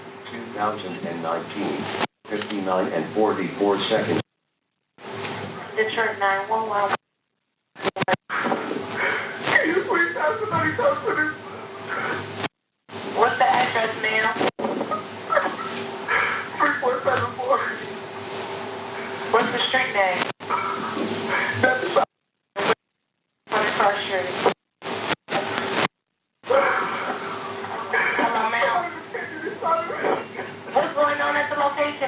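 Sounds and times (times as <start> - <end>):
steady hum: 0.0 - 32.0
voices over phone line: 0.3 - 4.2, 5.5 - 7.0, 7.8 - 12.4, 13.1 - 17.9, 19.0 - 22.8, 23.5 - 24.6, 26.4 - 32.0.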